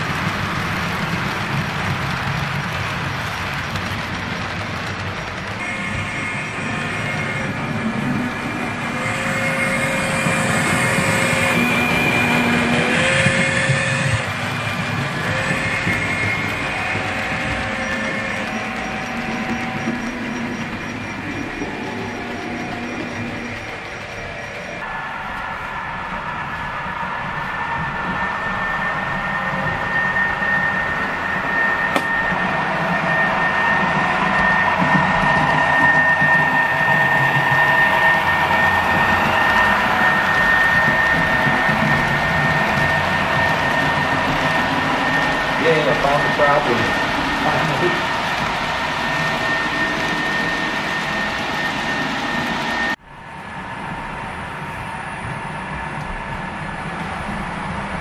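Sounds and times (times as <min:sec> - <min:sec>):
model train rolling on track: 0:00.0 - 0:58.0
steady high tone: 0:05.6 - 0:56.0.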